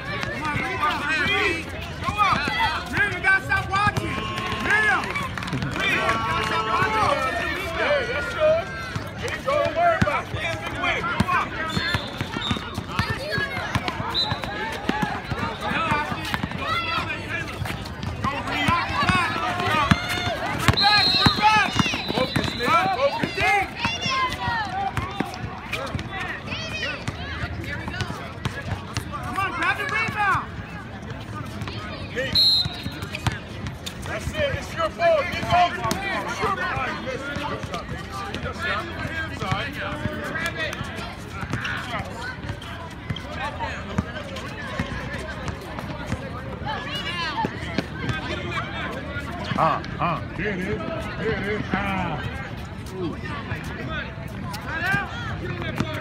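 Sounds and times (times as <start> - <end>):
basketball bouncing: 8.9 - 15.4, 16.1 - 16.8, 17.5 - 26.1
people shouting: 18.3 - 25.2.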